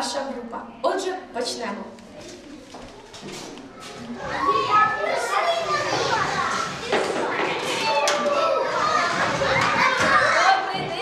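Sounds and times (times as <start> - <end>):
young children talking and calling: 0.0 - 11.0.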